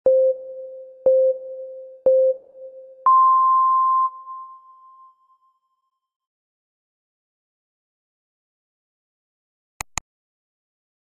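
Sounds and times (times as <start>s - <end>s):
electronic countdown beeps: 0.0s - 5.1s.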